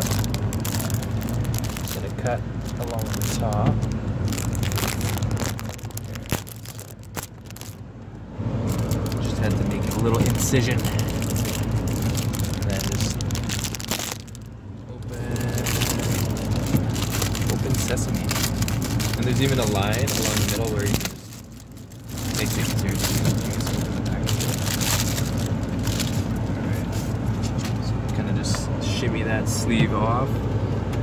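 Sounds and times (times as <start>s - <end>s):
plastic sleeve crinkling: 0.0s - 7.8s, 8.7s - 27.2s
steady low hum: 0.0s - 31.0s.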